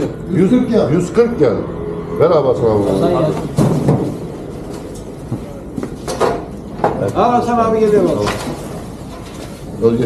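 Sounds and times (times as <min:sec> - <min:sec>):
trays knocking: 0:03.4 - 0:04.4.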